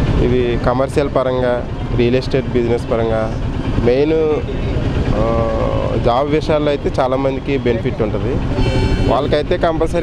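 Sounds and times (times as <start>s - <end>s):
man speaking into a microphone: 9.1s - 10.0s.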